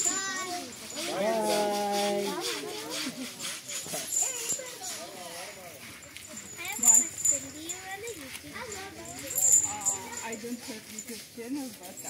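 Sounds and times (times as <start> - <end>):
children's voices: 0.0 - 5.6, 6.3 - 10.4
people chattering and calling out: 0.0 - 12.0.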